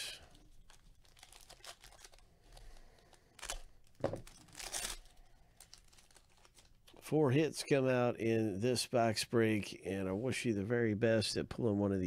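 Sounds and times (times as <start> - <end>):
foil wrapper crinkling: 0.1 - 7.0
foil wrapper ripping: 0.5 - 6.9.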